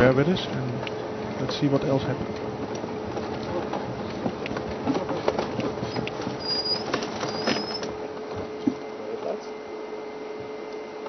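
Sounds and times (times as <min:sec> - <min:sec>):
rattles and knocks from rough ground: 0:00.0 - 0:08.8
vehicle engine: 0:00.0 - 0:08.8
steady electrical hum: 0:00.0 - 0:11.0.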